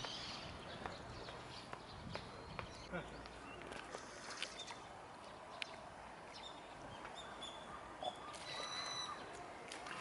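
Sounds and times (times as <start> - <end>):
small birds whistling calls: 0.0 - 3.6, 6.4 - 9.3
faint outdoor background noise: 0.0 - 10.0.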